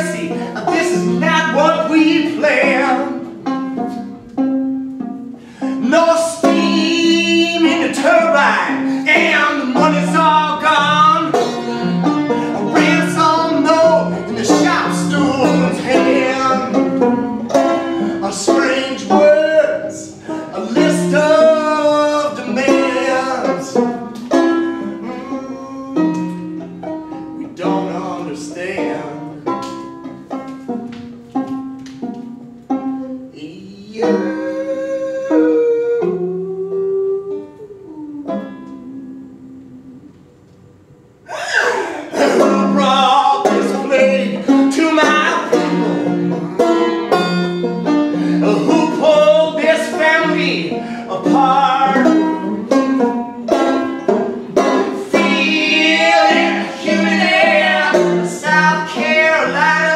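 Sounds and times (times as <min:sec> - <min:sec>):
banjo picking: 0:00.0 - 0:39.9, 0:41.6 - 0:59.9.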